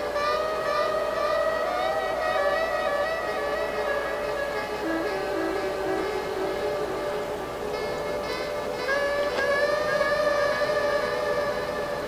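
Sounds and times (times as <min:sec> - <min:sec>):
long held woodwind notes: 0:00.0 - 0:12.0
rain hiss: 0:00.0 - 0:12.0.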